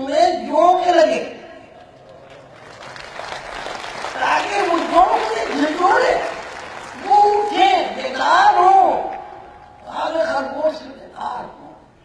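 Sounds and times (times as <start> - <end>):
audience applauding: 2.2 - 7.7.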